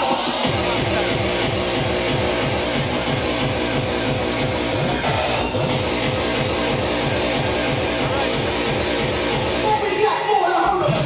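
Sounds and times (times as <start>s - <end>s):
hardcore dance music: 0.0s - 11.0s
fast kick drum: 0.4s - 9.8s.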